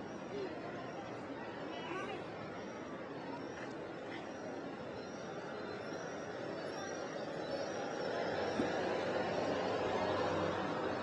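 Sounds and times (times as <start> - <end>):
background chatter of people: 0.0 - 11.0.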